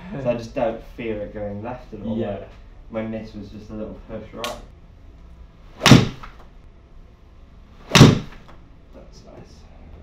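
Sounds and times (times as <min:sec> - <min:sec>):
golf club striking ball: 0:05.8 - 0:06.4, 0:07.9 - 0:08.5.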